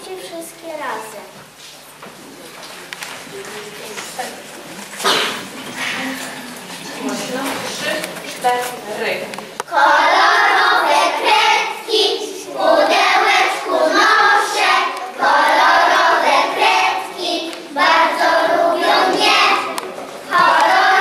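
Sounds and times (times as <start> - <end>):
scattered soft voices: 0.0 - 15.2, 15.9 - 21.0
children singing in unison: 9.7 - 21.0.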